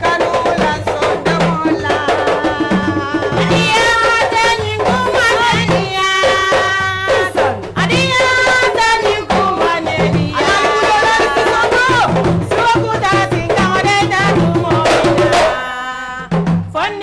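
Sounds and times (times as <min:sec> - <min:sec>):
djembe drumming: 0:00.0 - 0:17.0
women singing: 0:00.0 - 0:17.0.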